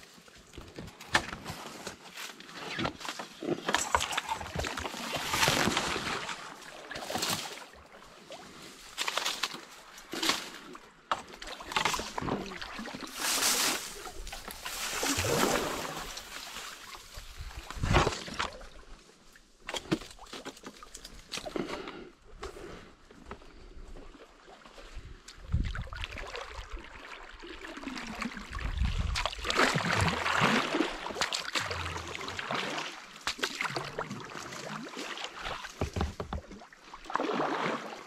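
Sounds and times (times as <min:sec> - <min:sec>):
kayak paddle splashes: 0:02.4 - 0:19.0, 0:25.6 - 0:38.0.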